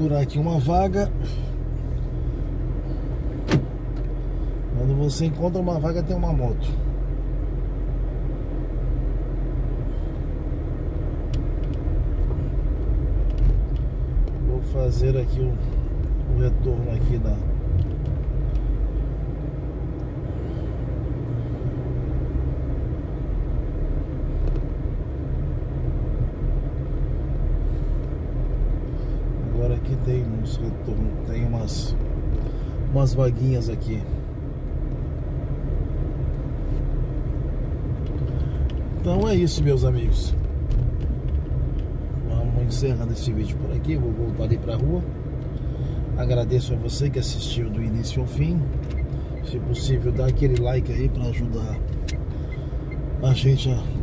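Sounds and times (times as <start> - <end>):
car engine and road hum: 0.0 - 54.0.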